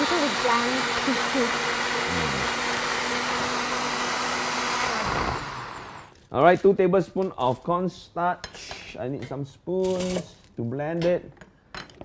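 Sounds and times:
blender running: 0:00.0 - 0:06.2.

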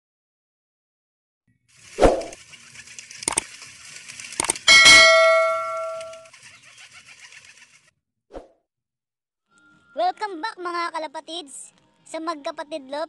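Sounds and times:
ringing metallic clang: 0:04.7 - 0:06.2.

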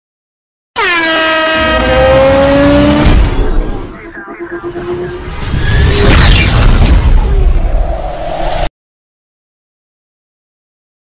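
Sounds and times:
horn-like tone sliding down: 0:00.8 - 0:06.0
low rumble: 0:03.1 - 0:08.7.

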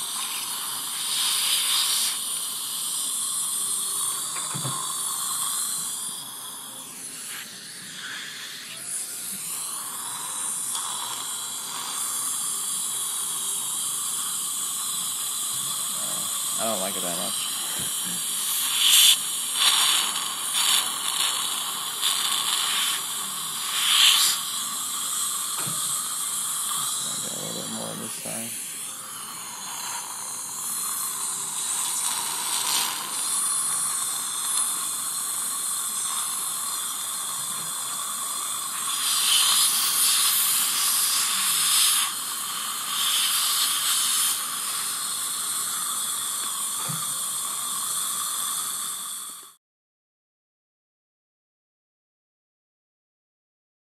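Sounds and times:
saliva ejector suction hiss: 0:00.0 - 0:49.6.

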